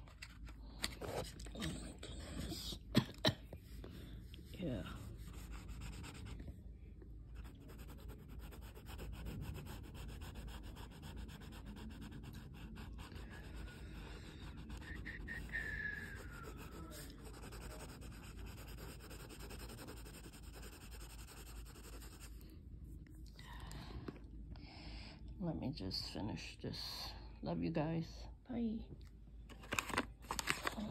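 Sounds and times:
person whispering: 0:01.4 - 0:02.9
blending stump rubbing on paper: 0:07.4 - 0:22.3.

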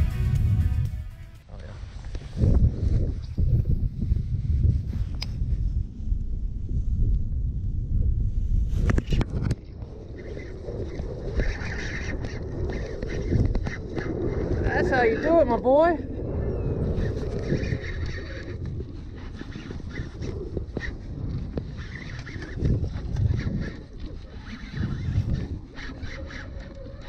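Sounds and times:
background music: 0:00.0 - 0:01.5
wind buffeting microphone: 0:00.0 - 0:27.0.

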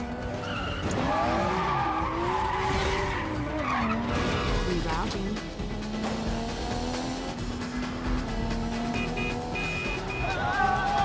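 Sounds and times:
race car engines revving: 0:00.0 - 0:11.0
tyres skidding and squealing: 0:00.0 - 0:11.0.

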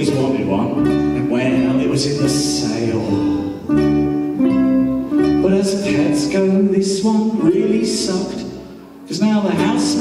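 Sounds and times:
man singing: 0:00.0 - 0:03.9, 0:05.3 - 0:10.0
ukulele: 0:00.0 - 0:10.0.

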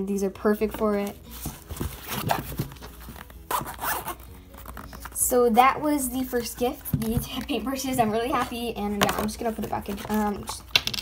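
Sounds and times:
zipper being pulled: 0:01.9 - 0:05.4.

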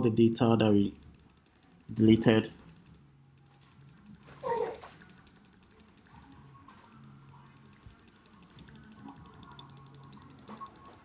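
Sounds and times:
faint steady ticking: 0:00.1 - 0:11.0.

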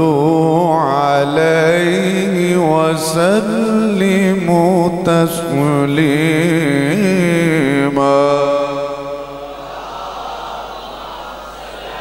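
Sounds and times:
man singing a long note: 0:00.0 - 0:09.6.

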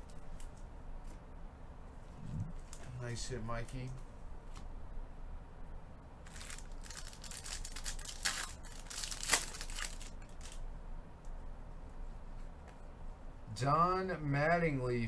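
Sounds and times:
foil card pack tearing open: 0:06.2 - 0:10.6.

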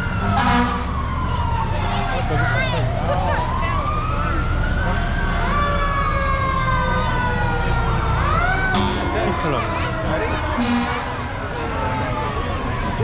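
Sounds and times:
fire engine sirens wailing: 0:00.0 - 0:13.0.

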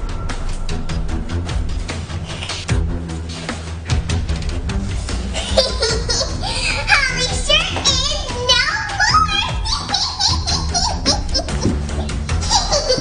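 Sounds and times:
background music: 0:00.0 - 0:13.0
child squealing and vocalizing: 0:09.0 - 0:13.0.

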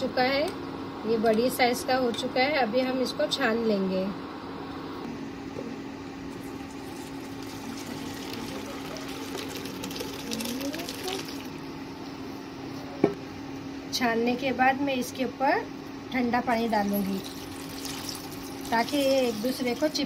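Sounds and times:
water pouring into colander: 0:06.4 - 0:11.5, 0:16.8 - 0:20.0.

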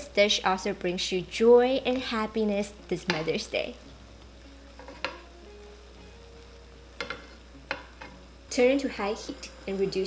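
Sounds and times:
food sizzling in a frying pan: 0:00.0 - 0:10.0
metal tongs clicking on pan: 0:03.0 - 0:03.4, 0:07.0 - 0:08.1.

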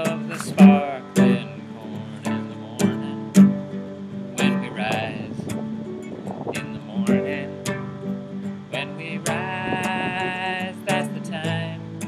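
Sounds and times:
man singing: 0:00.0 - 0:03.6, 0:04.3 - 0:05.6, 0:06.3 - 0:07.8, 0:08.7 - 0:12.0
classical guitar strumming: 0:00.0 - 0:12.0.

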